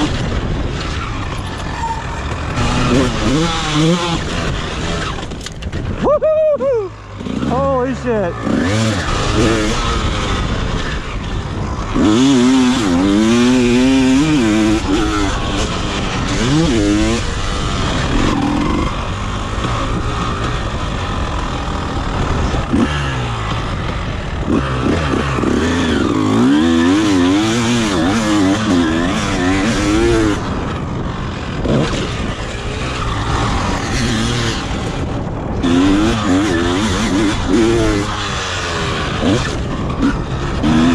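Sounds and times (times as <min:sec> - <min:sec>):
motorcycle engine revving: 0:00.0 - 0:40.9.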